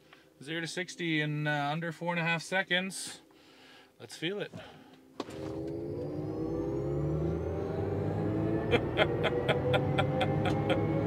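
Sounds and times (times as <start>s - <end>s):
electric motor whine: 5.2s - 11.0s.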